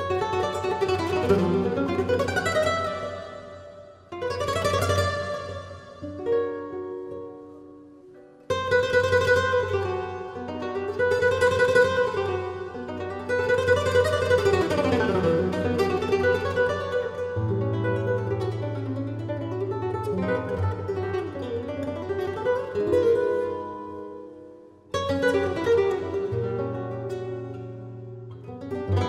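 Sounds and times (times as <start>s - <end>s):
flamenco guitar fingerpicked: 0.0s - 29.0s.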